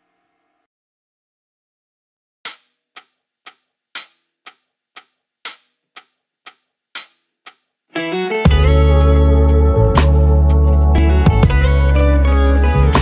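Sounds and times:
sharp rhythmic ticks: 2.5 - 7.8.

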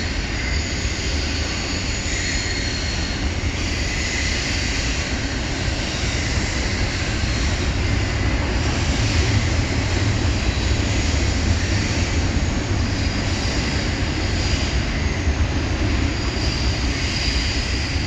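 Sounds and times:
train wheels rumbling on rail: 0.0 - 18.0.

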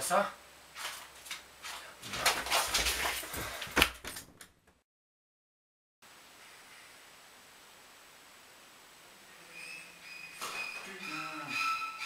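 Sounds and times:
scuffling at a desk: 0.8 - 4.3.

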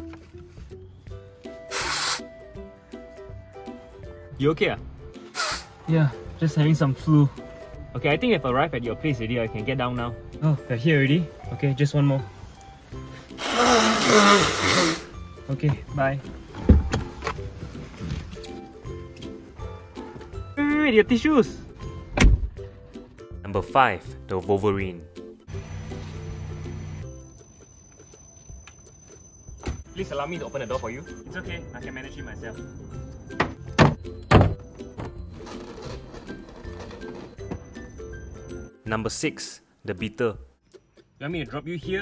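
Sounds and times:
background music: 0.0 - 42.0
car door heavy clunk: 16.6 - 17.5, 22.1 - 22.6, 33.4 - 35.2.

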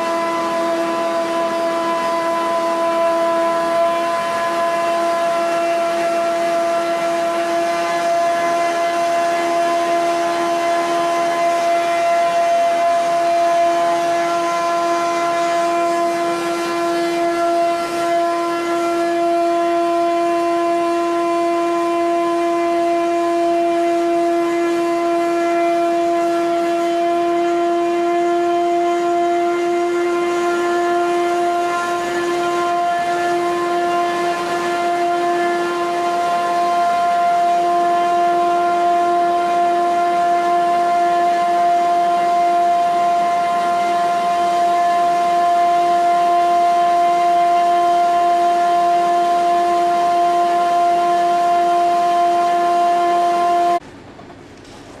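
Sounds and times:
machine loud steady whine: 0.0 - 55.0.

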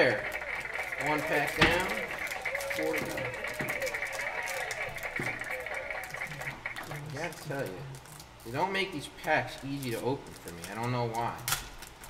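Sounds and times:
foil wrapper crinkling: 0.0 - 12.0.

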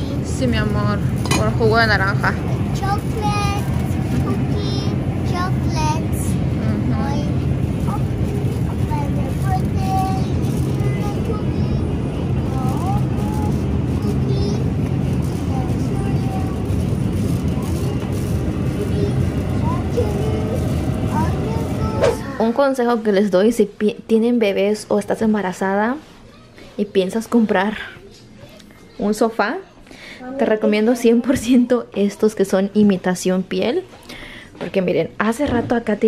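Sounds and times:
shopping cart wheels rumbling: 0.0 - 22.6.

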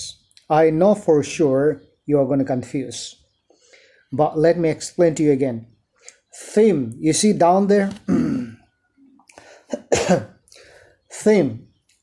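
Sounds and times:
man clearing his throat: 8.0 - 8.7, 9.7 - 10.4.

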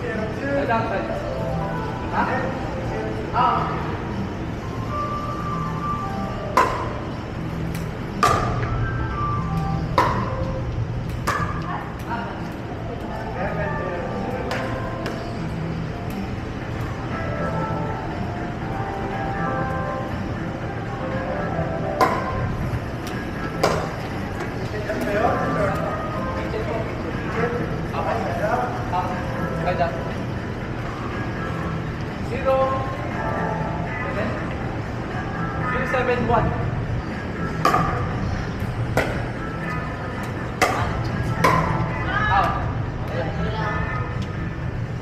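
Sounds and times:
background music: 0.0 - 45.0.

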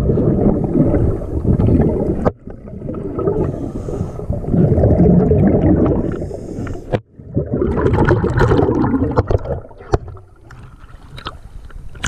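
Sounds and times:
water sloshing and bubbling: 0.0 - 12.0.

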